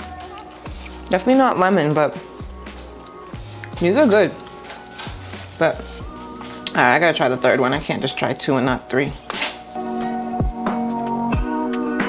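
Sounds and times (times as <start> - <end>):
background music with held chord: 0.0 - 12.0.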